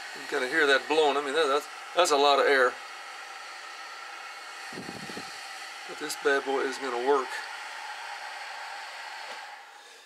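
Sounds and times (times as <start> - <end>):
blower fan hissing: 0.0 - 10.0.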